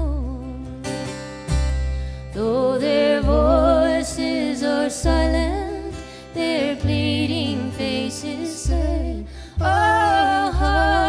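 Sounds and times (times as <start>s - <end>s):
voices singing in harmony: 2.4s - 11.0s.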